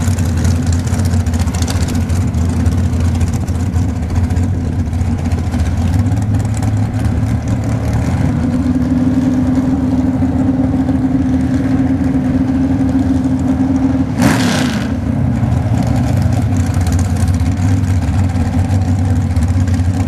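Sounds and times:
dragster engine idling: 0.0 - 14.2, 15.0 - 20.0
sharp burst of engine noise: 14.0 - 15.1.

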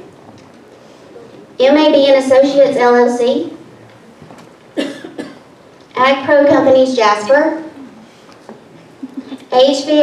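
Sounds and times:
person coughing: 4.8 - 5.5.

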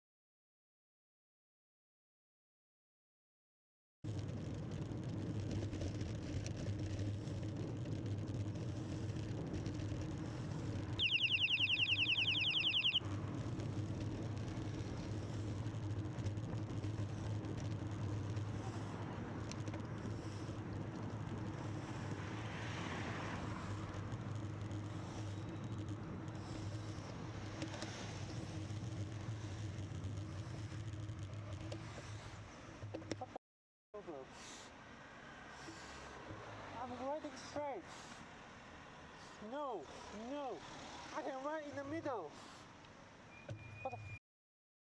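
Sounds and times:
wind and road noise: 4.1 - 33.4, 34.0 - 43.3
rapid high-pitched trill: 11.0 - 13.0
passing car: 20.1 - 28.1.

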